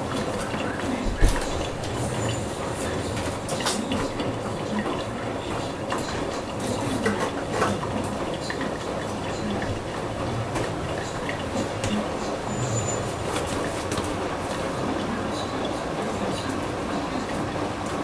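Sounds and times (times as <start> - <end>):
washing machine drum turning: 0.0 - 18.0.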